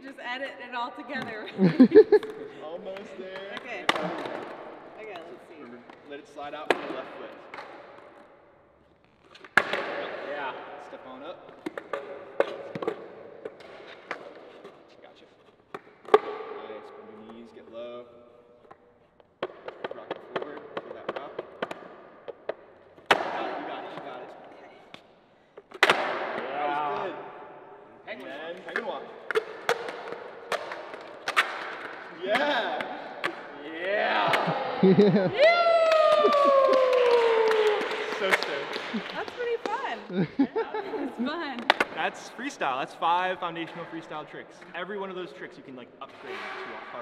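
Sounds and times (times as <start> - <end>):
skateboards clacking on concrete: 28.6 - 32.6.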